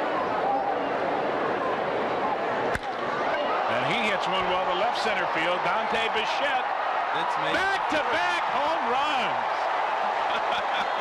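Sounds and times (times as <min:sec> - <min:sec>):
stadium crowd cheering and applauding: 0:00.0 - 0:11.0
announcer speaking: 0:07.2 - 0:09.4.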